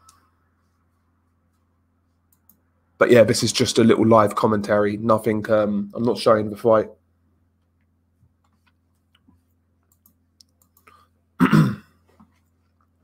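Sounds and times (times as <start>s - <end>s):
faint clicks: 7.6s - 11.0s
man clearing his throat: 11.4s - 12.0s.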